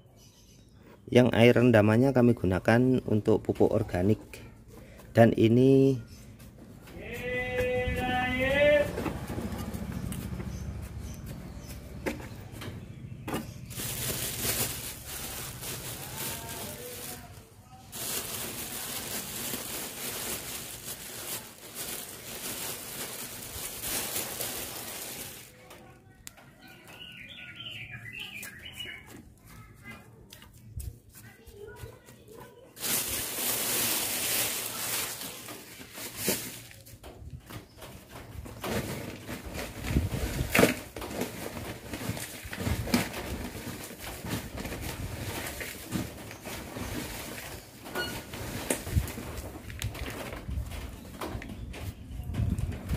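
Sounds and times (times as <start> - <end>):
small birds chirping: 0.0 - 2.8, 4.1 - 7.1, 9.5 - 16.0, 23.2 - 33.6
dry potting media rustling: 5.2 - 26.2, 26.9 - 52.9.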